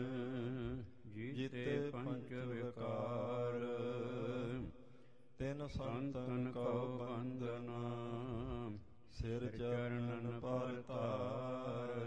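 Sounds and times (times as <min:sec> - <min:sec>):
man chanting: 0:00.0 - 0:04.7, 0:05.4 - 0:12.0.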